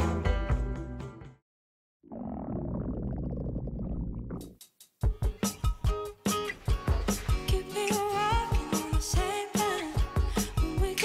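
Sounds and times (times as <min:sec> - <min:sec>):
low stomach growl: 0:02.0 - 0:04.5.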